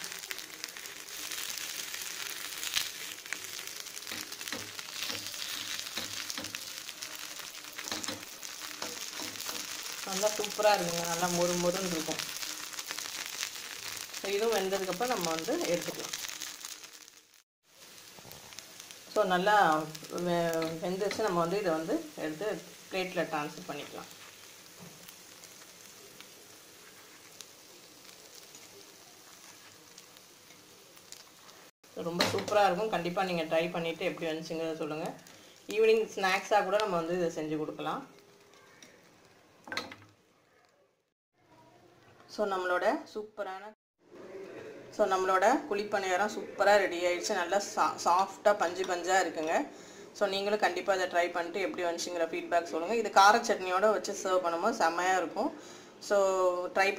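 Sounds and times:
oil sizzling with crackles and pops: 0:00.0 - 0:43.7, 0:44.9 - 0:56.9.

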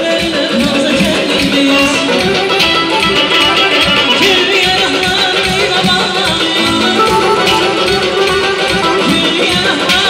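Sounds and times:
band playing wavering melody: 0:06.6 - 0:09.5.

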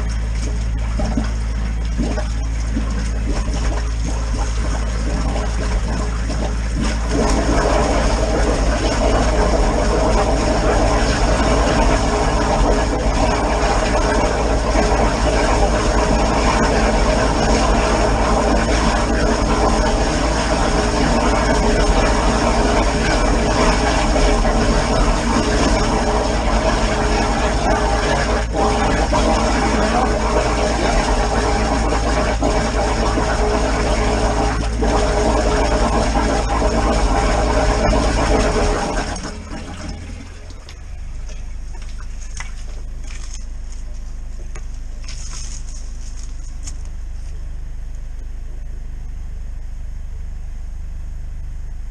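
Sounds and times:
jetting hose washing drain: 0:00.0 - 0:47.5
drain jetter engine and pump: 0:00.0 - 0:48.9.

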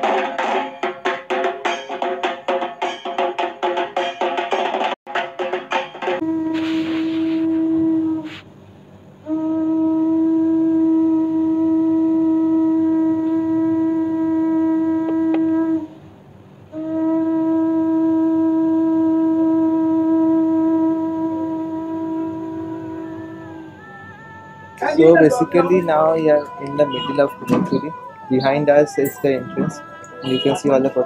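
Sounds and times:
conch shell blasts: 0:05.8 - 0:08.3, 0:09.7 - 0:15.9.

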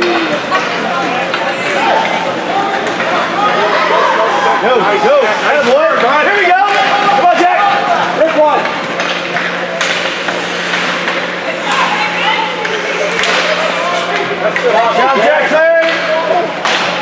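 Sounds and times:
hockey sticks and puck clacking: 0:00.0 - 0:03.2, 0:05.4 - 0:17.0
spectators shouting: 0:01.6 - 0:08.2.

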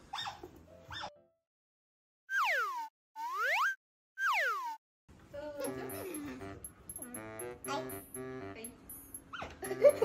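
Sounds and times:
cartoon sliding whistle: 0:02.3 - 0:04.8.

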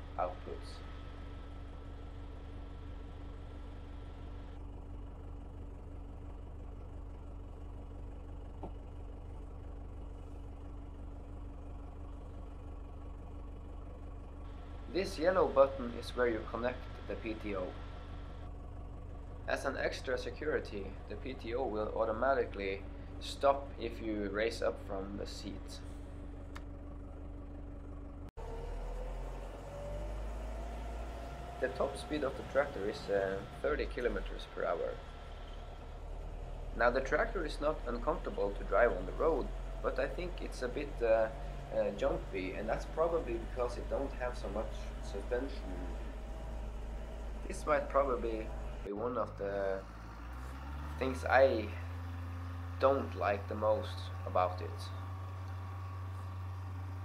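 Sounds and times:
diesel engine idling: 0:00.0 - 0:57.0.

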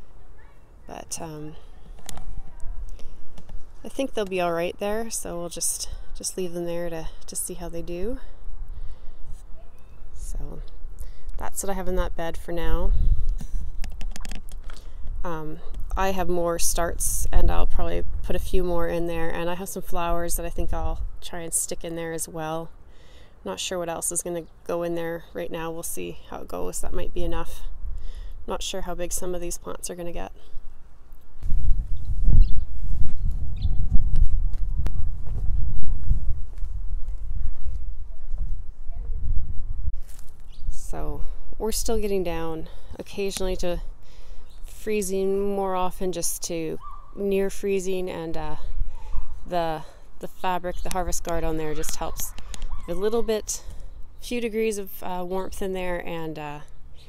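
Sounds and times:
wind and handling rumble: 0:01.2 - 0:21.4, 0:26.3 - 0:54.7
wind buffeting microphone: 0:10.8 - 0:21.3, 0:31.3 - 0:42.5, 0:48.4 - 0:49.8.

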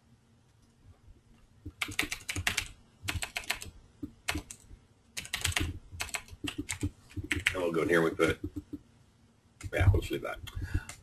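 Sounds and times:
typing on computer keyboard: 0:01.7 - 0:07.6.

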